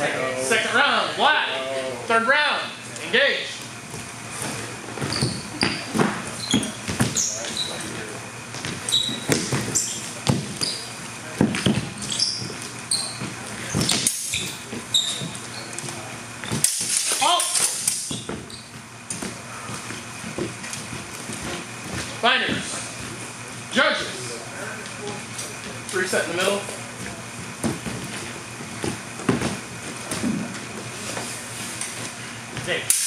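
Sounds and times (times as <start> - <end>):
shoes squeaking: 3.0 - 32.8
feet thudding on wooden floor: 27.0 - 30.7.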